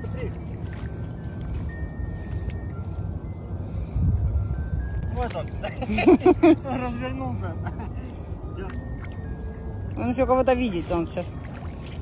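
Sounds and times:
wind rumble on microphone: 0.0s - 6.5s
faint soft background music: 0.0s - 12.0s.

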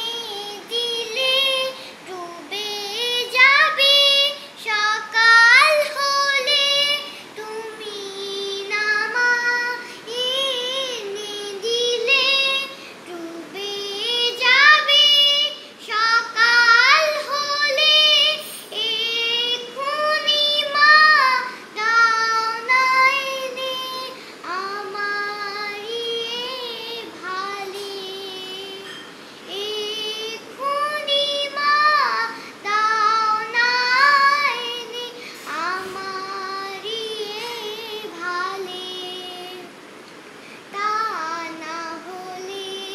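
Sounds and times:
girl singing unaccompanied: 0.0s - 42.9s.

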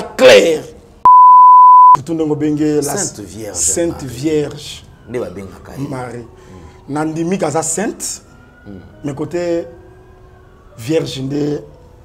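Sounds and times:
high-pitched test tone beep: 1.1s - 2.0s.

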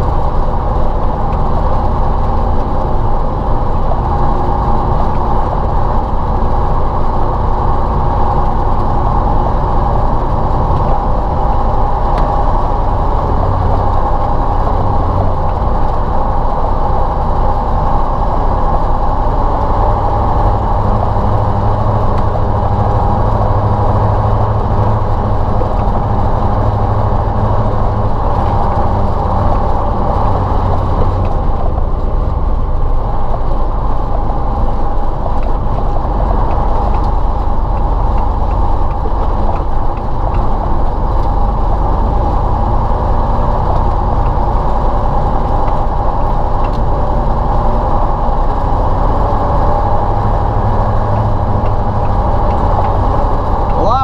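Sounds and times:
gearbox whine and clatter: 0.0s - 53.8s
diesel truck engine running: 0.0s - 54.0s.

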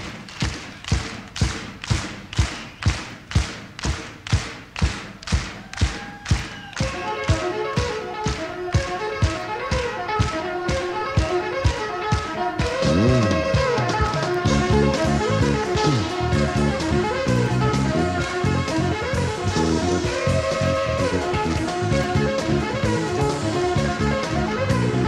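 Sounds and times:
drum beat: 0.0s - 24.9s
jazz-rock band playing: 6.8s - 25.0s
melodic instruments: 6.8s - 25.0s.

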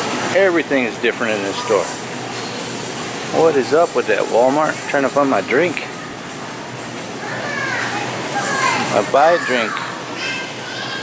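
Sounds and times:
indoor store hubbub: 0.0s - 11.0s
child calling out: 7.3s - 11.0s.

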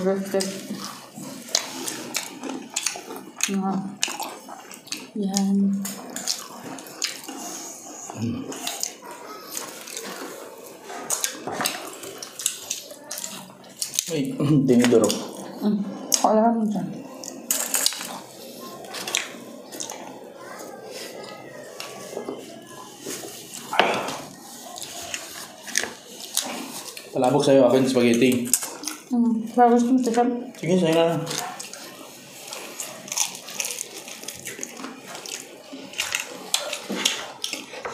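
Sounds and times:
chewing and crunching fried food: 0.0s - 37.9s.

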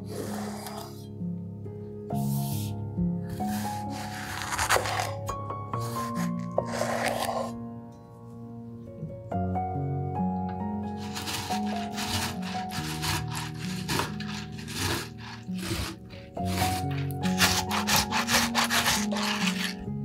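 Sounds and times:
background music: 0.0s - 20.0s
tomato rasping on grater: 3.4s - 5.2s, 11.0s - 19.9s.

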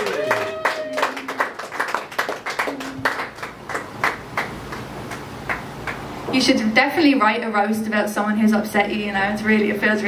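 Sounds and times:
audience clapping: 0.0s - 6.1s.

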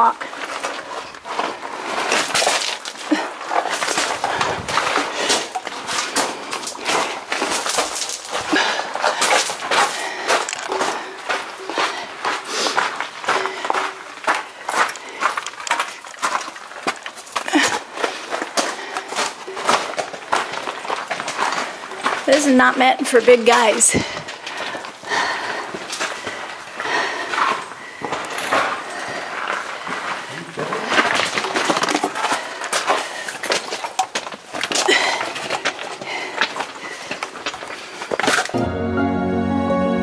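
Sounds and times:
footsteps on gravelly rock: 0.0s - 38.6s.

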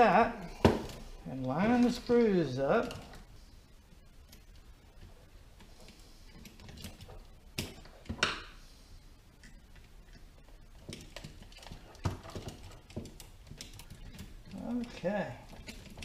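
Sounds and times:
plastic parts clicking and knocking: 4.3s - 8.6s, 9.4s - 16.0s.

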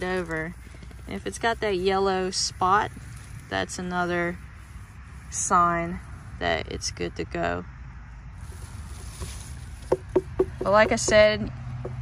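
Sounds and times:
soft rustling rush: 0.0s - 6.5s, 8.3s - 11.2s.

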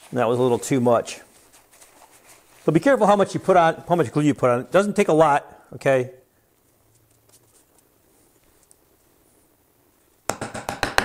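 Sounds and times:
hammer tapping wooden dowel: 10.3s - 11.0s.

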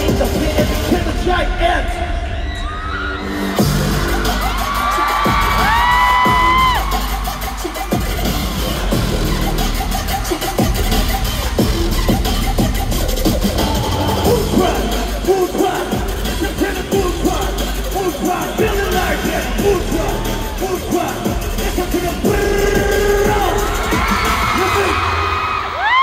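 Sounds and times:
heavy bass beat: 0.0s - 2.4s, 3.2s - 26.0s
crowd noise: 0.0s - 26.0s
loud hip-hop music: 0.0s - 26.0s.

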